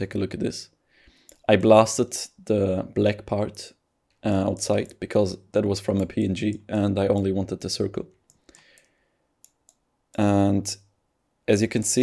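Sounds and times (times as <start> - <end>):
computer mouse clicks: 8.2 - 10.2.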